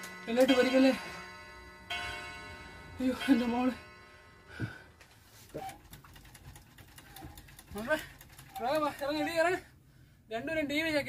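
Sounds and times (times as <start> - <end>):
bell-like chime ringing: 0.0 - 5.0.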